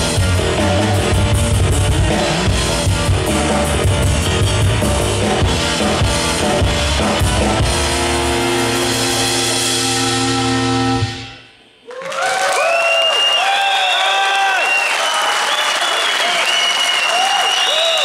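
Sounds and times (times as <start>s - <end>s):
busy drumming: 0.0s - 11.0s
sustained band chord: 0.0s - 11.6s.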